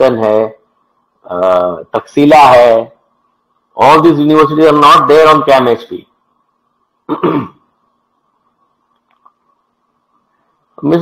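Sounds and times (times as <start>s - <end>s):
faint electronic hum: 0.0s - 11.0s
man clearing his throat: 7.1s - 7.7s.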